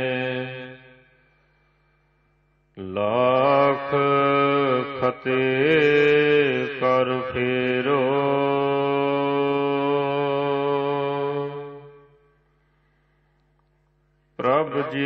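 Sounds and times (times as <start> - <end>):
man chanting: 0.0 - 1.1, 2.8 - 12.2, 14.4 - 15.0.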